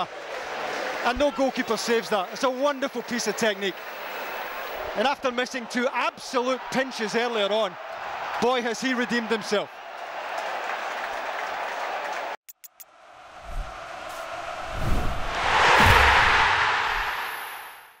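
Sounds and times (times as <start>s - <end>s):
stadium crowd cheering: 0.0s - 17.8s
whoosh with low thumps: 13.4s - 18.0s.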